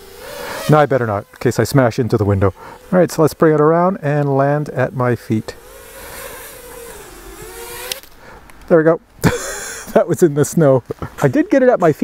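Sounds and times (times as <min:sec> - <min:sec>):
drone propellers whining: 0:00.0 - 0:08.7
sharp click: 0:07.4 - 0:08.7.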